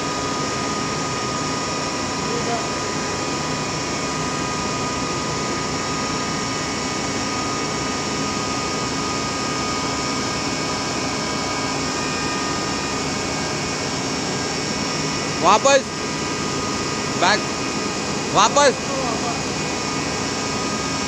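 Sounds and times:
auger machine droning: 0.1 - 21.0.

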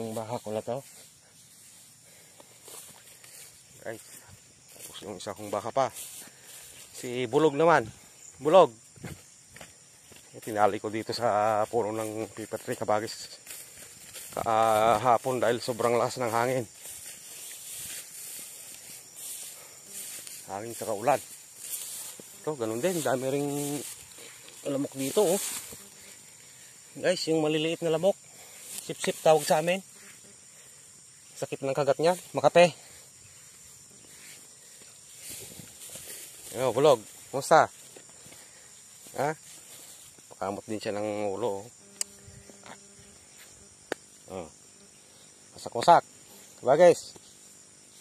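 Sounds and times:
faint rustling ticks: 0.0 - 7.2, 41.8 - 44.1
high-pitched outdoor hiss: 0.0 - 48.0
insects chirring: 0.0 - 48.0.

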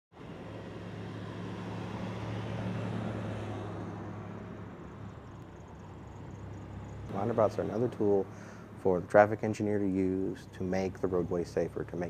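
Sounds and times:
car driving past: 0.2 - 12.0.

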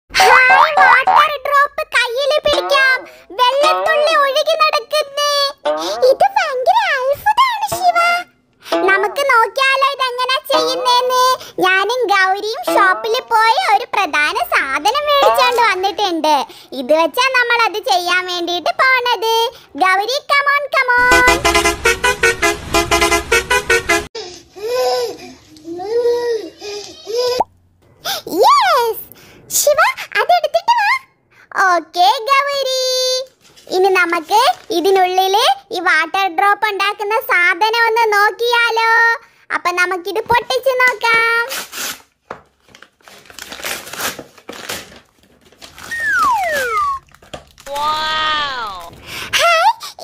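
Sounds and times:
high-pitched voice talking: 0.2 - 7.2, 8.7 - 11.3, 12.4 - 13.7, 14.6 - 16.1, 45.9 - 47.0, 47.7 - 49.0
low rumble: 21.0 - 24.1
rapidly pulsing horn tones: 21.0 - 24.1
steady held note: 21.0 - 24.1.

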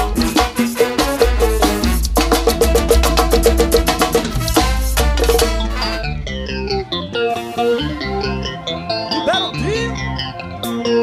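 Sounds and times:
bass: 0.0 - 11.0
drums: 0.0 - 11.0
guitar melodic run: 0.0 - 11.0
live band music: 0.0 - 11.0.

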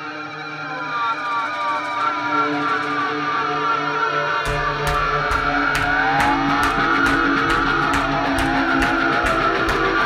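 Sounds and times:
electric guitars wavering pitch: 0.0 - 10.0
steady drum beat: 4.5 - 10.0.

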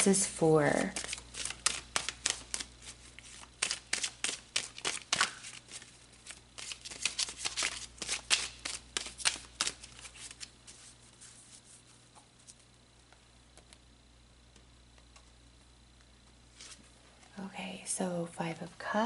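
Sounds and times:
cards being shuffled: 0.8 - 12.6, 16.5 - 16.9.

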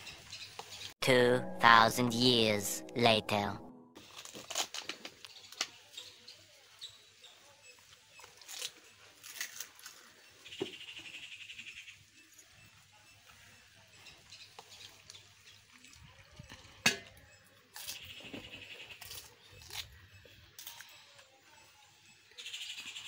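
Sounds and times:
crisp shells cracking and crunching: 4.0 - 5.7, 8.2 - 10.1.

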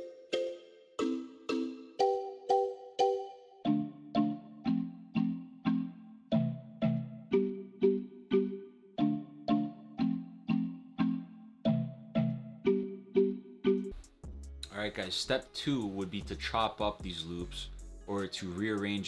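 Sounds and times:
plucked-string melody loop: 0.0 - 19.0.

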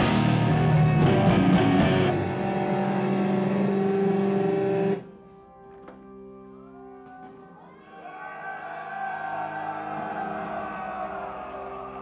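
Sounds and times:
distorted electric guitar chord: 0.0 - 5.0.

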